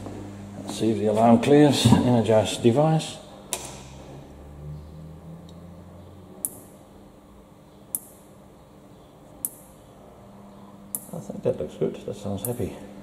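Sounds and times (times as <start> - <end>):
low hum: 0.0 - 11.4
electric fence energizer ticking: 5.4 - 6.9, 7.8 - 8.4, 12.3 - 12.8.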